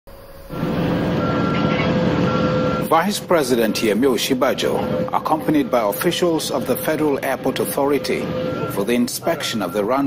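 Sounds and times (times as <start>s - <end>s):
vehicle engine running with whine: 0.1s - 10.0s.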